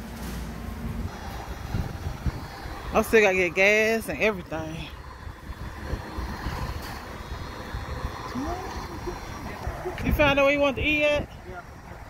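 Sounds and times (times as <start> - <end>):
low rumble: 0.8 - 12.0
wind buffeting microphone: 0.8 - 12.0.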